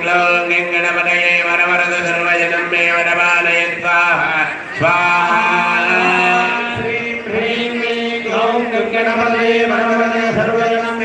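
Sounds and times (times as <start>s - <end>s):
men chanting mantras: 0.0s - 11.0s.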